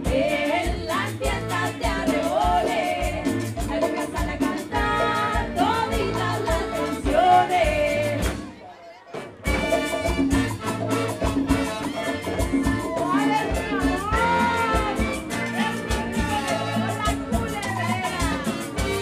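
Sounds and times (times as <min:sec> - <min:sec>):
woman singing: 0:00.0 - 0:08.5, 0:12.6 - 0:19.0
live cumbia band: 0:00.0 - 0:19.0.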